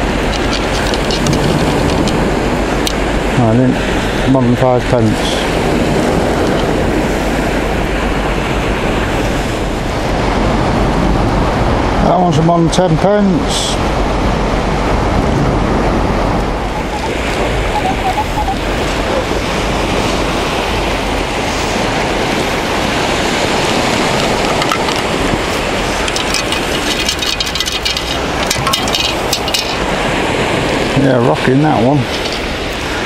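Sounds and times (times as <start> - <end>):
wind and surf rushing: 0.0 - 33.0
sand shaken through metal scoop: 24.0 - 30.0.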